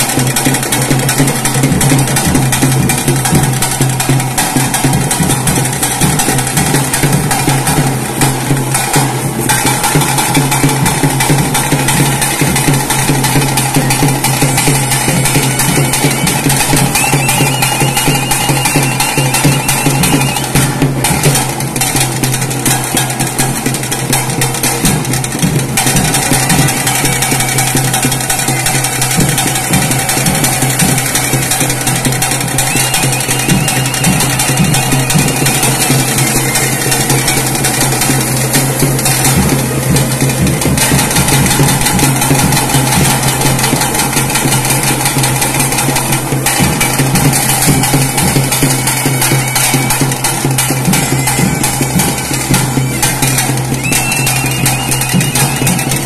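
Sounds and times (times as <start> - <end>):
rapid drumming: 0.0 - 56.0.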